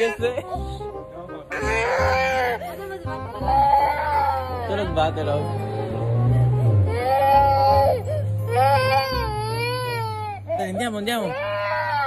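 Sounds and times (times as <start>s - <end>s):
high wailing cry: 1.5s - 6.0s, 6.9s - 12.0s.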